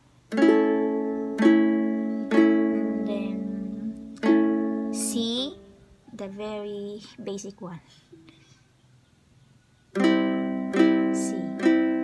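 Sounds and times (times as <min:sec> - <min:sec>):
ukulele strumming: 0:00.0 - 0:05.8, 0:09.9 - 0:12.0.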